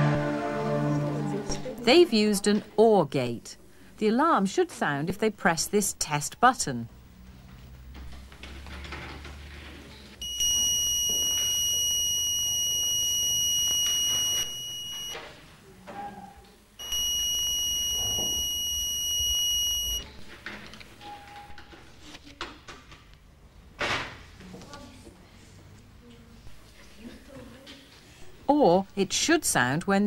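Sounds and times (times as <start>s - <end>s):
high-pitched buzzer alarm tone: 10.2s - 15.2s, 16.8s - 20.0s.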